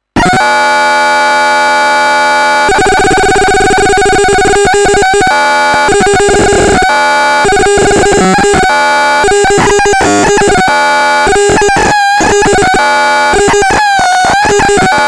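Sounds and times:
harsh electronic noise: 0:00.0 - 0:00.6, 0:01.3 - 0:15.0.

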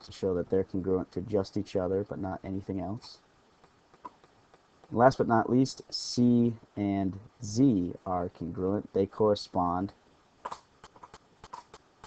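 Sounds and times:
stylus tapping and scratching: 0:03.6 - 0:05.0, 0:10.4 - 0:12.0.

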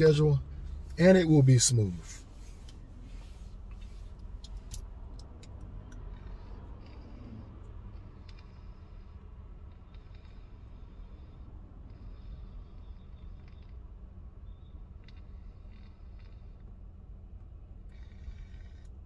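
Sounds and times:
vehicle idling: 0:00.0 - 0:19.0.

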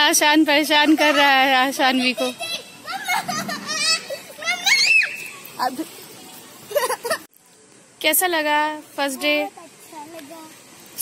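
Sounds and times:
children shouting while playing: 0:02.4 - 0:05.6.

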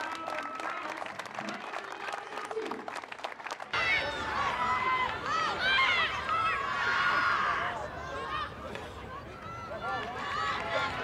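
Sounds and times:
crowd noise: 0:03.7 - 0:11.0
players shouting: 0:03.8 - 0:11.0.

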